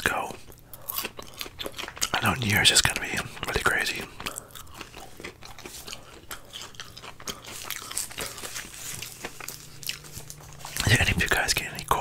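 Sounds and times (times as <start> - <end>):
chewing crispy fries: 0.0 - 12.0.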